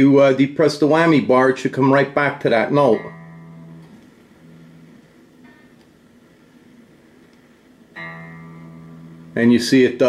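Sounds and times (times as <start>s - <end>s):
electric guitar string ringing: 1.9s - 5.9s, 7.9s - 10.0s.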